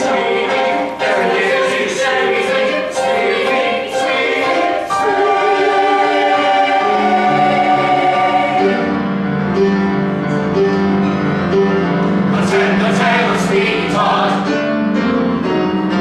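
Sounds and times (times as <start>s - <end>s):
choir singing: 0.0s - 9.4s, 12.1s - 14.8s.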